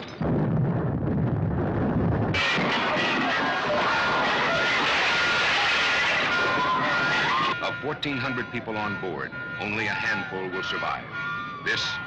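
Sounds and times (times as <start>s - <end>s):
loud crashing noise: 0.0s - 7.5s
deep muffled rumble: 0.2s - 4.6s
steady high tones: 6.4s - 12.0s.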